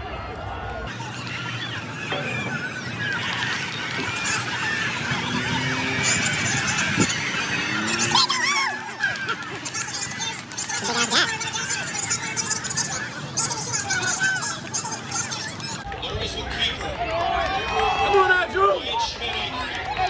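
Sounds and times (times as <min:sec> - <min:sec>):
crowd cheering and shouting: 0:00.0 - 0:20.0.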